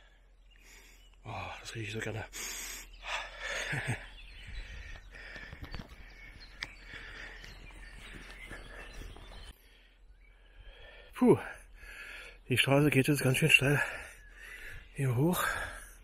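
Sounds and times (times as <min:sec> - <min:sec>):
distant bird calls: 0:00.0 - 0:16.0
wind: 0:00.0 - 0:16.0.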